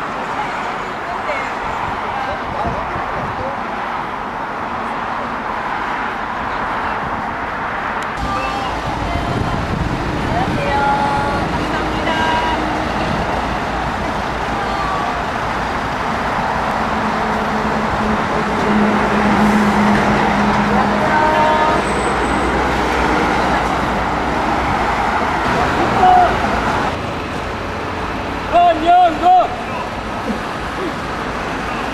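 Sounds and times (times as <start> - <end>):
road traffic passing: 0.0 - 31.9.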